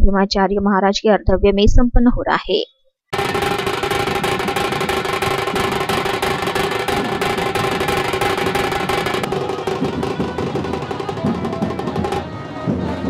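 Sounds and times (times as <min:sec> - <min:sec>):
fast drumming on large drums: 0:03.1 - 0:13.0.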